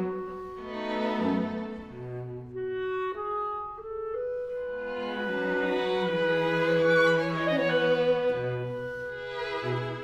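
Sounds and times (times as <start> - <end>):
bowed strings: 0.0 - 3.2, 4.2 - 10.0
clarinet long held notes: 0.0 - 9.3.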